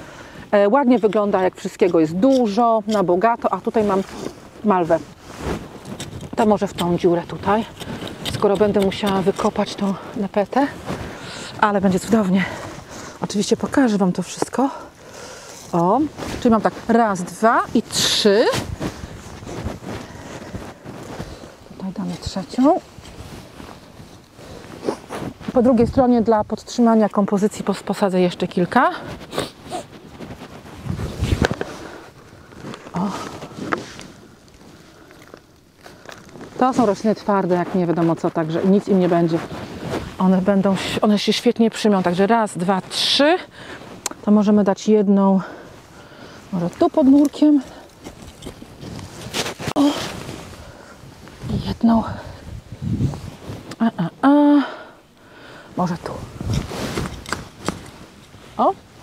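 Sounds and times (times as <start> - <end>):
hands rustling and scraping soil: 0.0 - 59.0
person moving on grass: 1.1 - 8.2, 10.0 - 27.4, 28.1 - 41.1, 45.6 - 54.5, 55.4 - 59.0
coat fabric rubbing: 3.5 - 6.4, 15.6 - 25.8, 28.8 - 32.0, 48.2 - 53.7, 55.8 - 59.0.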